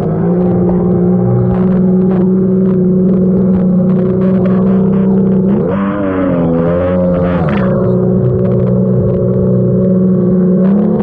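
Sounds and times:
jet ski engine running: 0.0 - 11.0.

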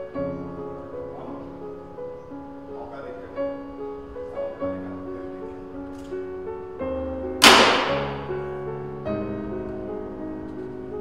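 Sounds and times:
soft piano music: 0.0 - 11.0
plate crashing on floor: 7.4 - 8.3.

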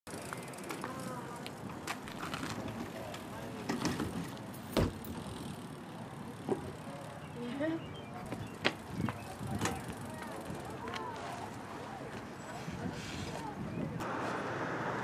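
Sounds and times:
steady outdoor background: 0.1 - 15.0
distant children's voices: 5.7 - 14.0.

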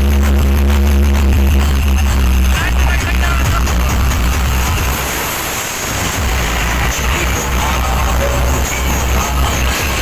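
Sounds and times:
bass-heavy music from speakers: 0.0 - 10.0.

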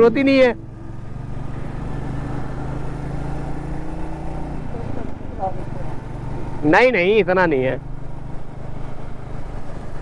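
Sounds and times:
motorcycle engine running: 0.0 - 10.0
road and wind noise: 0.0 - 10.0.

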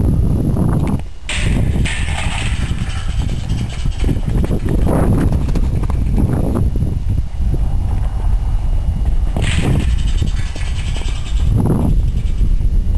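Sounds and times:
heavy uneven low rumble: 0.0 - 12.9
horse hoofbeats on soft dirt: 2.1 - 6.7.

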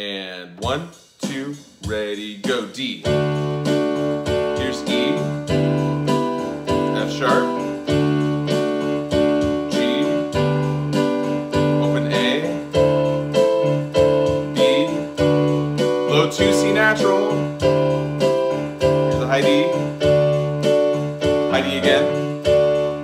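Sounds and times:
electronic keyboard playing scale: 0.6 - 23.0.

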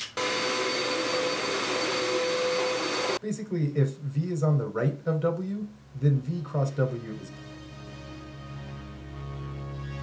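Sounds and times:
vacuum cleaner motor whining: 0.2 - 3.2.

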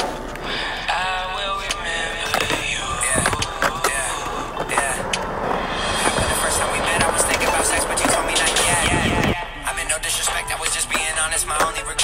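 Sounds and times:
hip hop music: 0.0 - 12.0
skateboard rolling on concrete: 0.0 - 12.0
skateboard knocks: 2.2 - 5.3.

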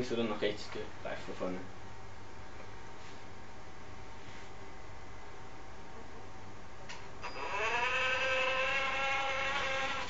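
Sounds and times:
electric motor whining: 7.2 - 10.0.

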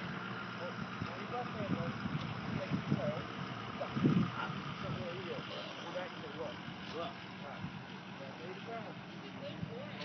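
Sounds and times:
faint indistinct voices: 0.4 - 10.0.

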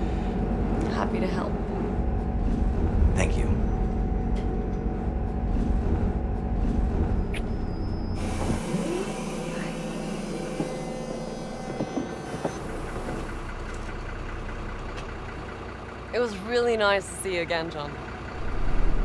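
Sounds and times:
bus engine rumble: 0.0 - 19.0.

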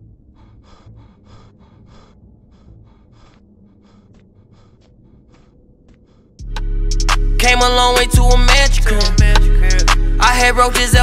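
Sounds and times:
person panting hard: 0.0 - 6.4.

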